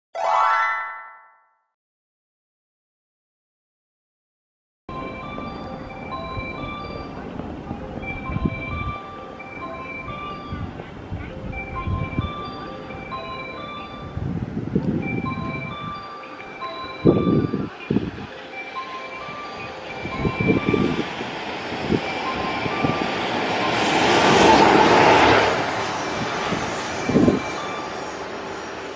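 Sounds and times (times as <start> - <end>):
locomotive passing at speed: 4.9 - 28.9.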